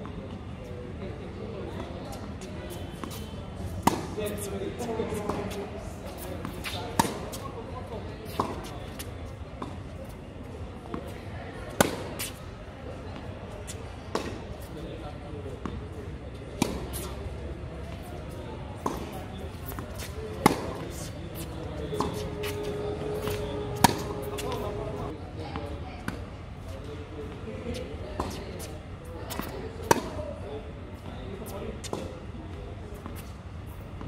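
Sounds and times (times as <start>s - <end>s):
tennis ball hit by racquet: 6.4s - 7.4s, 16.6s - 17.1s, 19.8s - 25.1s
steady tone: 21.6s - 25.2s.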